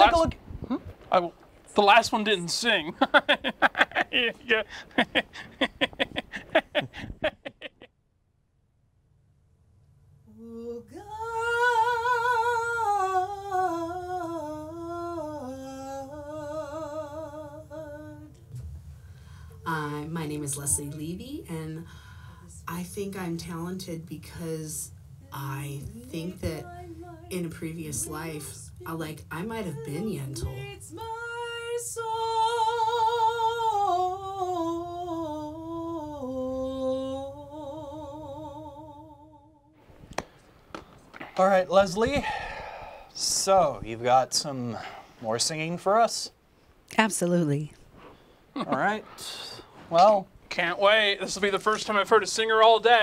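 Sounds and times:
woman singing: 0:10.3 - 0:18.5, 0:19.6 - 0:39.5.

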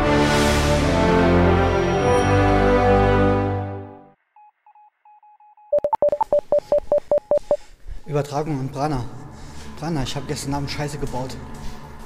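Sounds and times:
intro theme music: 0:00.0 - 0:04.2
electronic beeps: 0:04.4 - 0:07.6.

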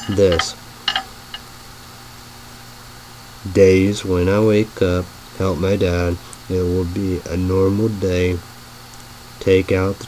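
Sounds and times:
low hum and hiss: 0:00.0 - 0:10.0.

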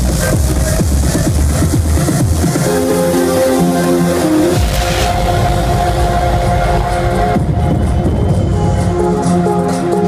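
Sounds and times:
electronic dance music: 0:00.0 - 0:10.0.

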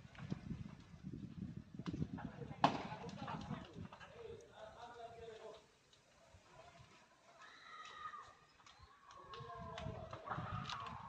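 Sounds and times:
fire cracking and popping: 0:00.0 - 0:06.2, 0:07.4 - 0:11.0.

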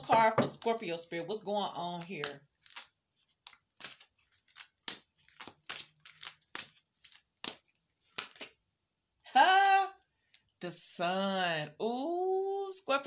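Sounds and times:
woman speaking: 0:00.0 - 0:02.4, 0:09.2 - 0:10.0, 0:10.6 - 0:13.0
cards being shuffled: 0:01.9 - 0:08.6.

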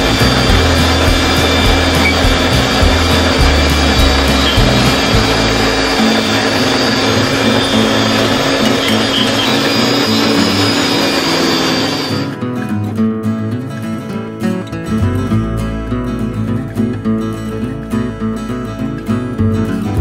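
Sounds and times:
blender running: 0:00.0 - 0:12.4
background music: 0:00.0 - 0:20.0.

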